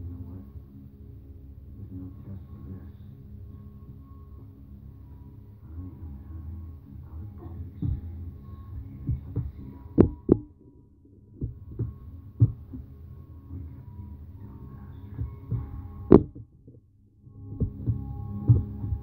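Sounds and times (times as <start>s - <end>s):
low steady hum: 0.0s - 19.0s
dull thuds on the floor: 15.5s - 16.4s.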